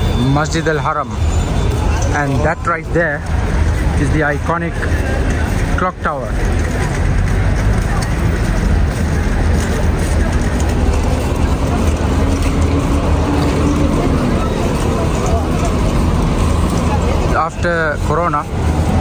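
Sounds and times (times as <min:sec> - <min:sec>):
crowd chatter: 0:00.0 - 0:19.0
vehicle engines rumbling: 0:00.0 - 0:19.0.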